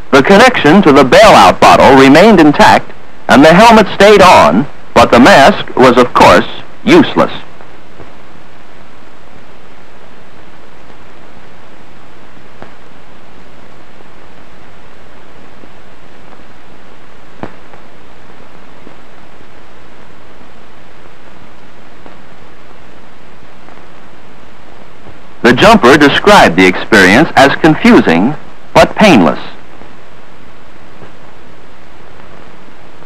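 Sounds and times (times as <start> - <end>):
film soundtrack hiss: 0.0 - 33.0.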